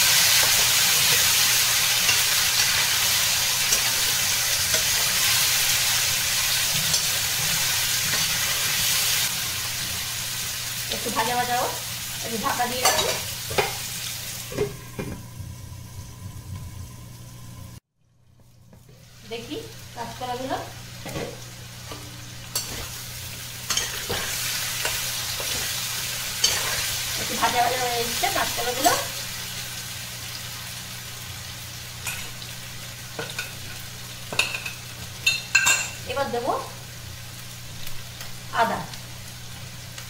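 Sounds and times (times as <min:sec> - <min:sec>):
potatoes sizzling in oil: 0:00.0 - 0:17.8, 0:18.6 - 0:40.0
kitchenware clinking: 0:12.8 - 0:13.8, 0:34.3 - 0:36.0.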